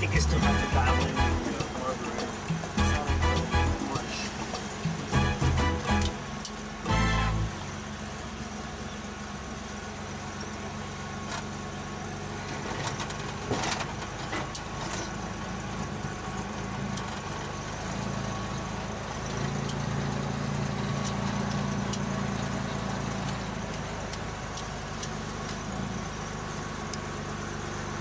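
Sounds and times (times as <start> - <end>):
car engine running inside cabin: 0.0 - 6.5.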